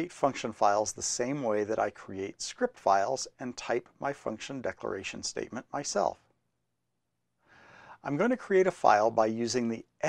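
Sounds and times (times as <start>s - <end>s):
man speaking: 0.0s - 6.2s, 8.0s - 10.0s
man breathing in: 7.4s - 8.0s.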